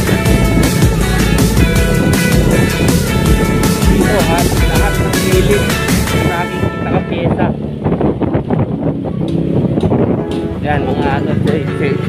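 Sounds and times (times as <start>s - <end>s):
vehicle driving slowly: 0.0s - 12.0s
wind buffeting microphone: 0.0s - 12.0s.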